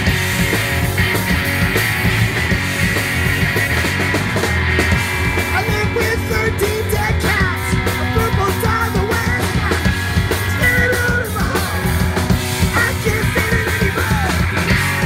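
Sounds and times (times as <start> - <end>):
drums: 0.0 - 15.0
electric guitars: 0.0 - 15.0
person singing: 5.5 - 15.0.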